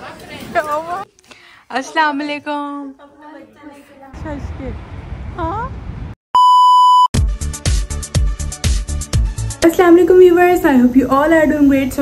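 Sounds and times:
electronic beep tone: 6.4s - 7.1s.

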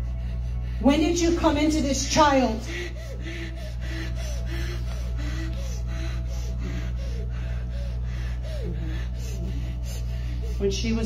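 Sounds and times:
constant low hum: 0.0s - 11.0s
soft background music: 0.0s - 11.0s.

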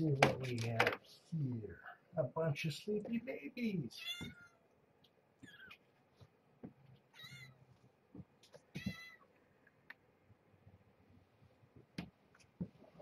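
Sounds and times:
kittens mewing: 4.0s - 4.6s, 5.4s - 5.8s.

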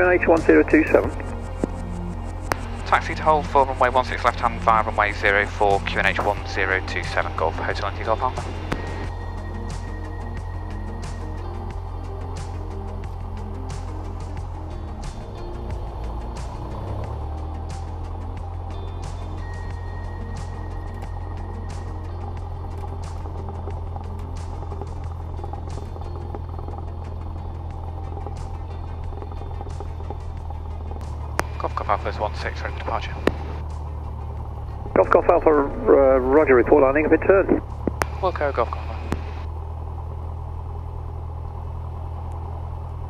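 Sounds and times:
garbled radio transmission: 0.0s - 1.8s, 2.4s - 9.1s, 31.3s - 33.7s, 34.8s - 39.5s
piston engine droning: 0.0s - 43.0s
faint regular clicks: 12.4s - 32.0s, 37.7s - 39.5s.

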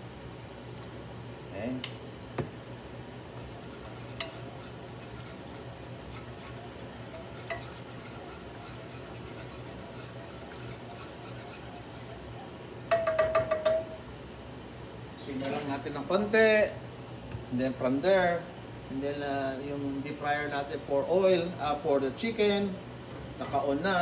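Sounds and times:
steady low hum: 0.0s - 24.0s
metal spoon stirring sauce: 3.3s - 12.6s
metal taps on pan: 12.9s - 14.0s.

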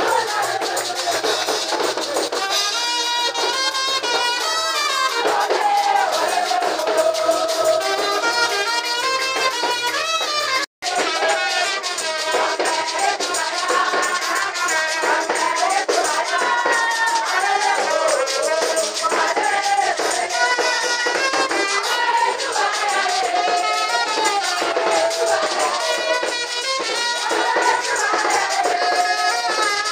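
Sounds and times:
voices singing: 0.0s - 2.3s, 4.2s - 8.6s, 10.8s - 29.9s
hand percussion: 0.0s - 29.9s.

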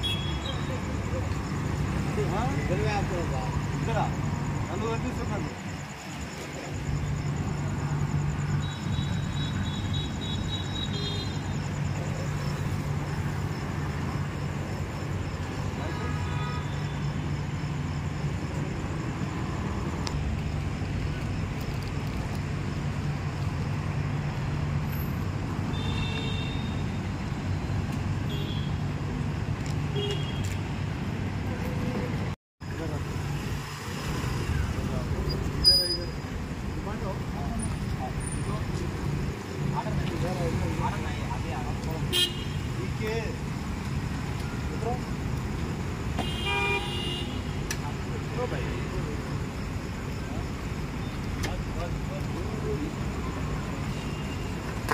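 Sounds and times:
vehicle horns: 0.0s - 0.7s, 15.8s - 17.1s, 25.7s - 26.9s, 42.1s - 42.7s, 46.2s - 47.6s
motorcycle and scooter engines: 18.5s - 42.0s.

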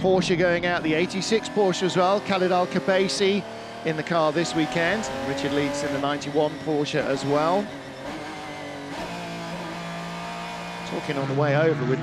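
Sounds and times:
race car engine onboard: 0.0s - 12.0s.

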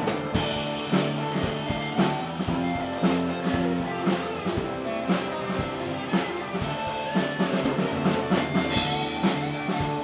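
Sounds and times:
drum kit beat: 0.0s - 10.0s
electric guitars: 0.0s - 10.0s.

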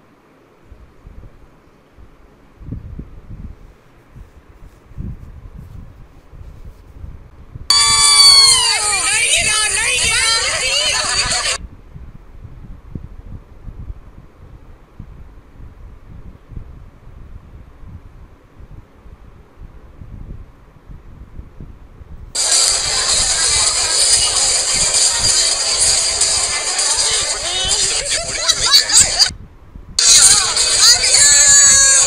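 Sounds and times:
loud close voice: 8.2s - 11.6s, 26.4s - 29.3s, 30.0s - 32.0s
music and voices: 8.5s - 11.6s, 22.4s - 29.3s, 30.0s - 32.0s.

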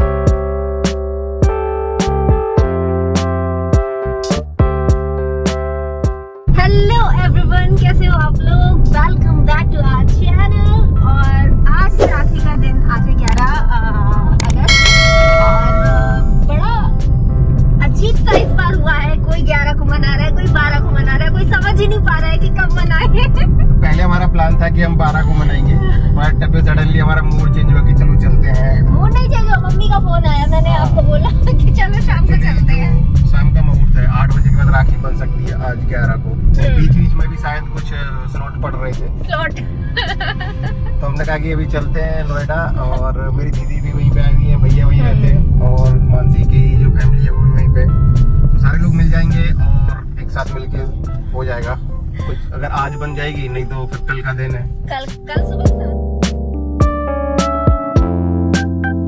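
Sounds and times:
people talking: 6.5s - 15.0s, 15.8s - 16.9s, 17.8s - 47.8s, 48.6s - 56.0s
car cabin rumble: 6.5s - 56.6s.

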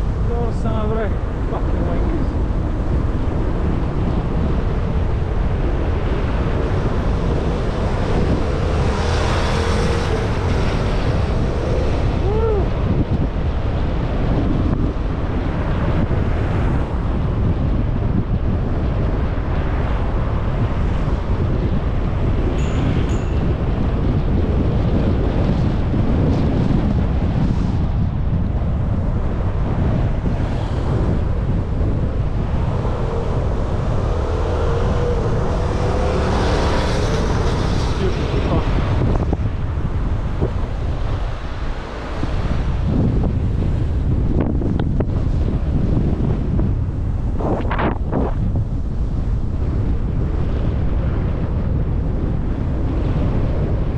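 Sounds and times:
droning engine: 0.0s - 53.9s
wind buffeting microphone: 0.0s - 53.9s.

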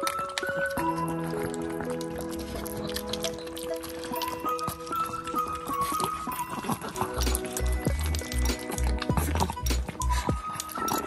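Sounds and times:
puppies eating from plastic bowl: 0.0s - 11.0s.

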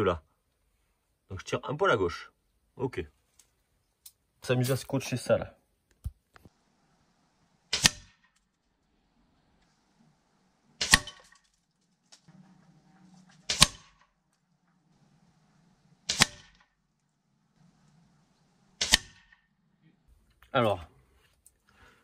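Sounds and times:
air rifle shots: 7.7s - 8.4s, 10.8s - 11.4s, 13.4s - 14.2s, 16.0s - 16.8s, 18.8s - 19.6s
pellets striking paper target: 7.7s - 8.4s, 10.8s - 11.6s, 13.4s - 14.2s, 16.0s - 16.7s, 18.8s - 19.4s.

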